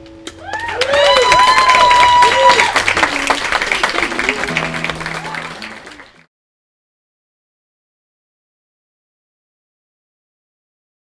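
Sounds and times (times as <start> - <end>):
audience applause and cheers: 0.3 - 6.3
acoustic guitar chord: 4.0 - 5.8.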